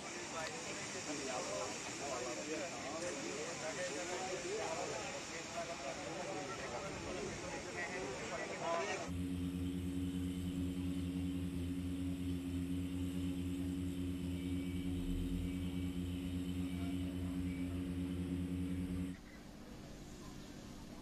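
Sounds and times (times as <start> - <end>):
truck engine pulsing hum: 8.4 - 21.0.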